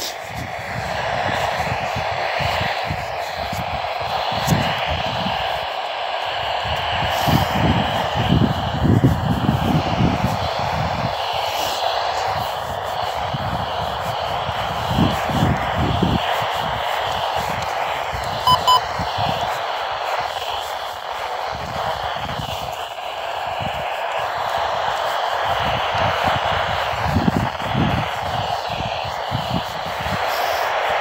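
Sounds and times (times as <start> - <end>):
radio static hiss: 0.0 - 31.0
short electronic beeps: 18.4 - 18.8.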